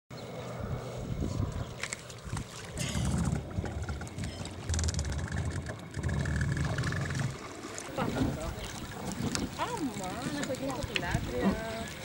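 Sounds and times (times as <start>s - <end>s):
wind buffeting microphone: 0.6s - 12.0s
sea water sloshing: 1.7s - 12.0s.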